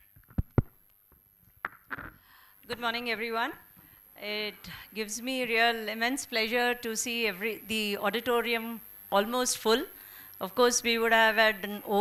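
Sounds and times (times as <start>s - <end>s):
microphone handling thumps: 0.1s - 0.8s.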